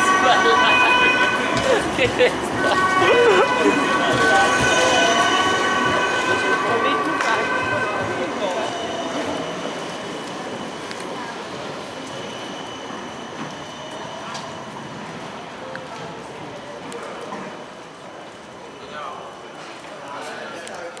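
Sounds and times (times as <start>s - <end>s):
traffic: 0.0s - 18.8s
pedestrians talking: 0.0s - 21.0s
trams running on rails: 0.0s - 21.0s.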